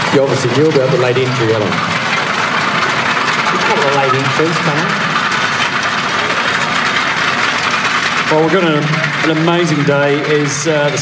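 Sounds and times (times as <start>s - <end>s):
tractor engine running: 0.0s - 11.0s.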